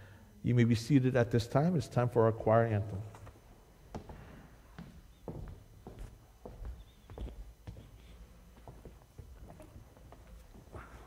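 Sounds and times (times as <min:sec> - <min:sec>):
faint footsteps: 0:03.0 - 0:11.0.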